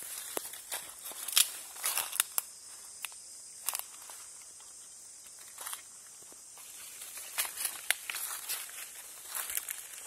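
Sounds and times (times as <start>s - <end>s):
footsteps on dry leaves: 0.0s - 2.7s, 6.5s - 10.0s.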